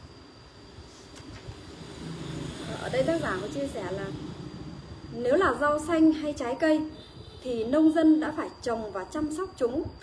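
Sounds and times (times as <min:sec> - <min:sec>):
faint high-pitched whine: 0:00.0 - 0:10.0
low steady rumble: 0:00.0 - 0:10.0.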